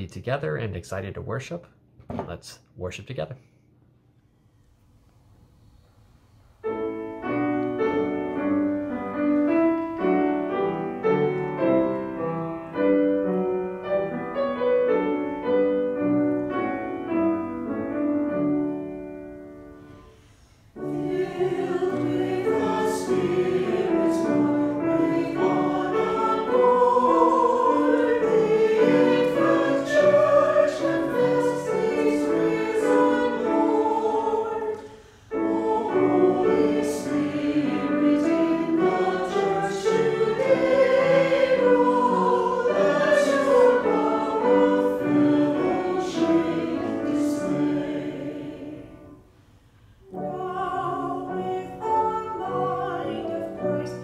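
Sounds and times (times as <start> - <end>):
piano accompaniment: 6.6 - 49.3, 50.0 - 54.0
choir singing a hymn: 6.6 - 49.4, 50.0 - 54.0.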